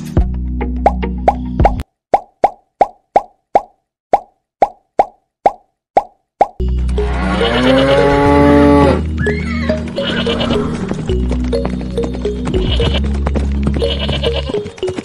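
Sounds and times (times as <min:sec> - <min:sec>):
background music with sliding tones: 0:06.6 - 0:15.0.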